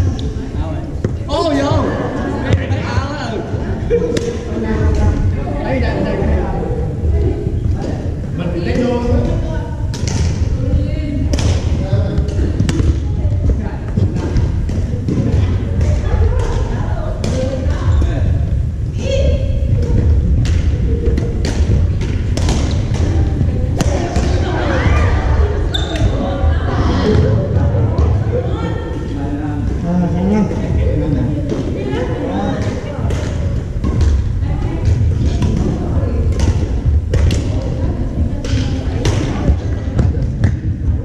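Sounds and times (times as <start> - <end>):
voices in echoing hall: 0.0 - 41.0
rackets hitting shuttlecocks: 19.9 - 24.4.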